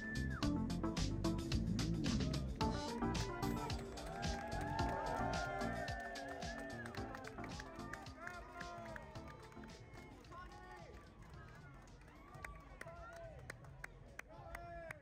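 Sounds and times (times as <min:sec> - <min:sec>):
faint music: 0:00.0 - 0:14.9.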